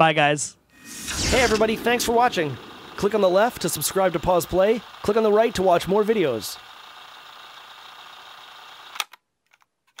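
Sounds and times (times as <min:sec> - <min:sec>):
low steady hiss: 0:00.8 - 0:05.7.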